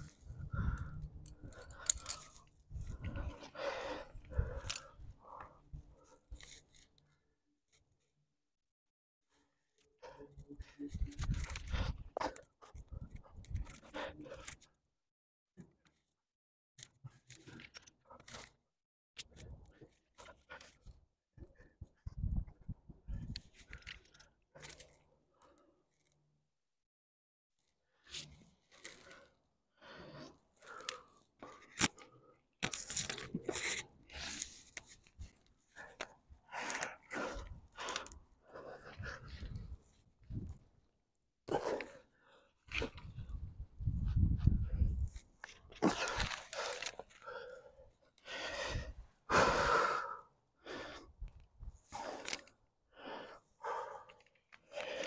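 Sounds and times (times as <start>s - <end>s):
person breathing hard: 0.0s - 6.6s, 28.8s - 33.0s, 35.7s - 39.9s, 45.7s - 55.0s.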